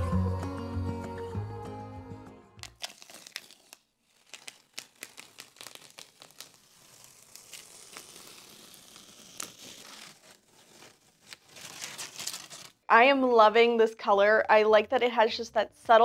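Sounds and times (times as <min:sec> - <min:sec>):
tape peeling off wood: 0:02.6 - 0:12.8.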